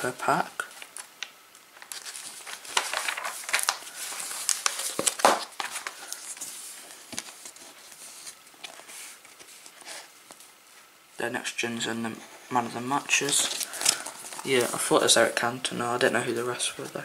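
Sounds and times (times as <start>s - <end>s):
paper pages rustling: 0.6s - 10.8s, 12.3s - 17.0s.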